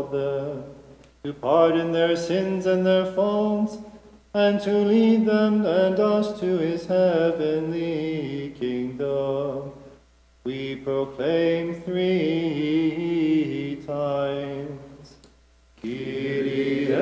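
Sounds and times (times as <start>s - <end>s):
man chanting: 0.0s - 9.8s.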